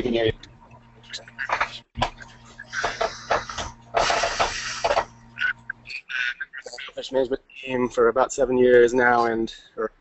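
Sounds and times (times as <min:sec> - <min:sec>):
steady electrical hum: 0:00.0 - 0:10.0
burst of hiss: 0:02.8 - 0:05.0.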